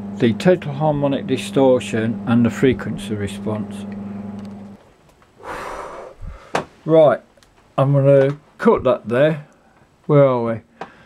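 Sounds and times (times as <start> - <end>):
low mains hum: 0.0 - 11.0
breathy exhale: 5.4 - 6.7.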